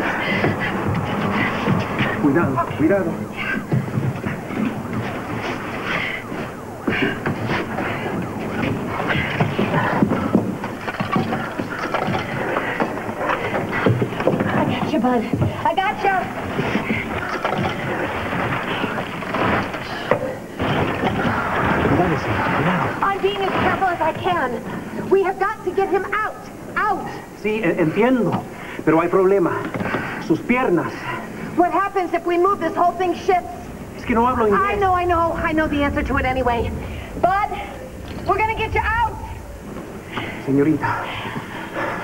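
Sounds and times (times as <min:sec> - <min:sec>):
indistinct voices: 0:00.0 - 0:26.9, 0:31.0 - 0:42.0.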